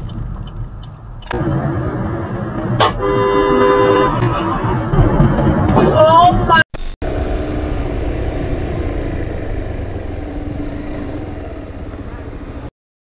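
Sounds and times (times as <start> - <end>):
motorcycle engine at low revs: 7.0 - 12.7.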